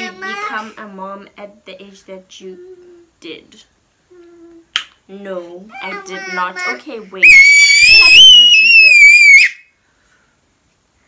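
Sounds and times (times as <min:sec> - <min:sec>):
toddler screaming: 0:05.8 - 0:09.6.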